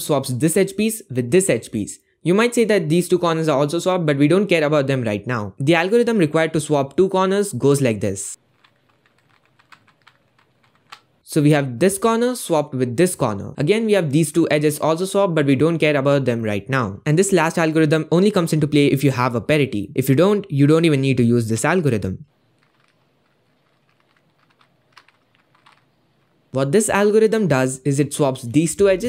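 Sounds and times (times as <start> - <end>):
puzzle cube layers clicking: 8.4 - 11.2, 22.5 - 26.5.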